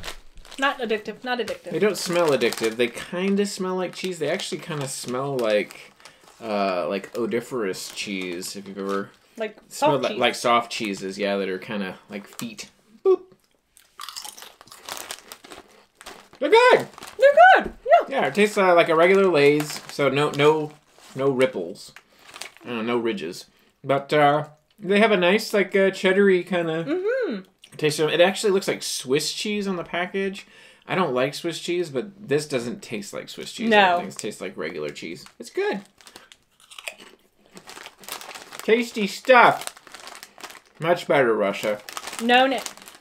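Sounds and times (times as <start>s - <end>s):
people chewing potato chips: 13.4s - 17.3s, 22.0s - 22.7s, 35.9s - 43.0s.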